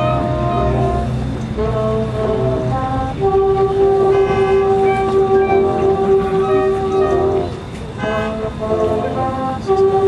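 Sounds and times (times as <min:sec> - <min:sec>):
marching band wind section chord: 0:00.0 - 0:10.0.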